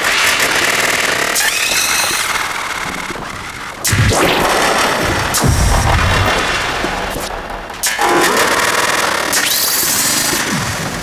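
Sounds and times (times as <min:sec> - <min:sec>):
harsh noisy synthesizer textures: 0:00.6 - 0:11.0
deep synthesizer bass: 0:02.7 - 0:09.0.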